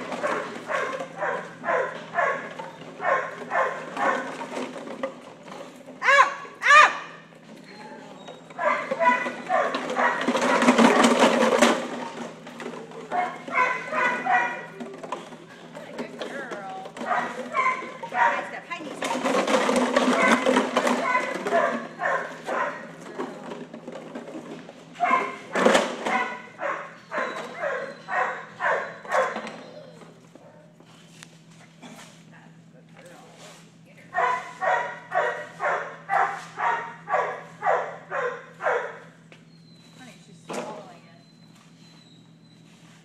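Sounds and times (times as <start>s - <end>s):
dog barking: 0.2s - 4.3s, 6.0s - 7.1s, 8.6s - 11.0s, 13.1s - 14.7s, 17.0s - 18.5s, 21.0s - 22.9s, 25.0s - 25.5s, 26.1s - 29.5s, 34.1s - 39.0s.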